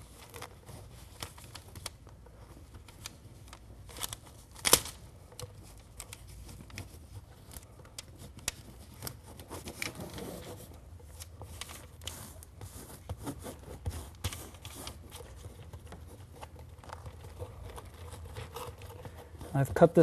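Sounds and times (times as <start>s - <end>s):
tape crinkling and rustling: 0.0s - 20.0s.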